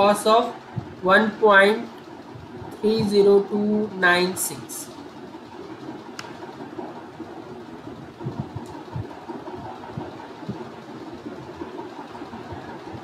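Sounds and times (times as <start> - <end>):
background hiss and hum: 0.0 - 13.0
soft low thumps: 0.7 - 1.0, 8.0 - 10.6.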